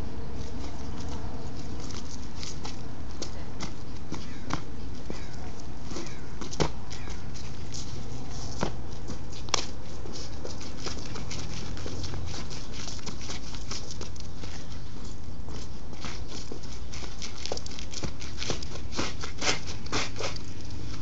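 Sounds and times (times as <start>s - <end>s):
sneakers tapping on concrete: 0.4s - 14.8s.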